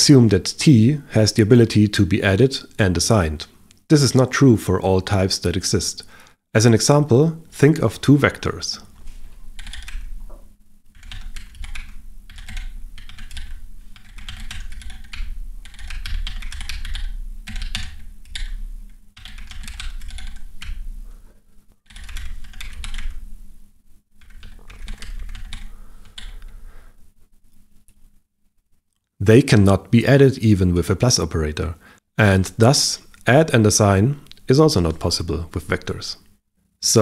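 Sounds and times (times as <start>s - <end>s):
rapid typing on a keyboard: 9.5s - 10.2s, 10.9s - 20.9s, 21.9s - 23.2s, 24.2s - 26.6s.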